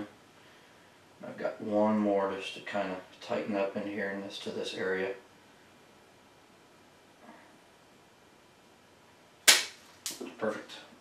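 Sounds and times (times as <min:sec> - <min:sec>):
pruning cutters snapping branch: 0:09.5 - 0:10.3.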